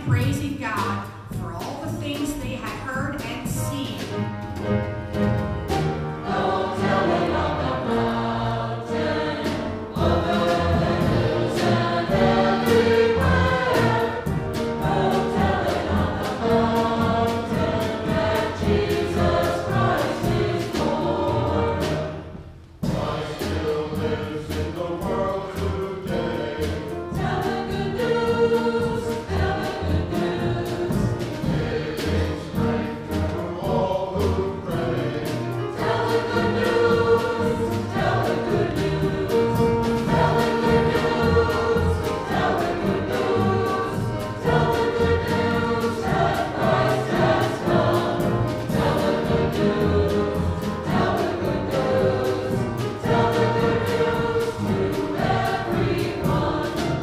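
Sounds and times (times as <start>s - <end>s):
instrumental accompaniment: 0.0s - 57.0s
church choir singing: 4.6s - 57.0s.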